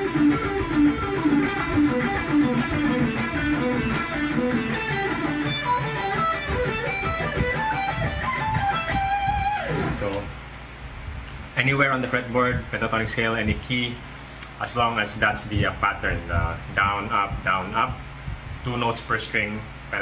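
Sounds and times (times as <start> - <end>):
electric guitar fast picked runs: 0.0 - 10.3.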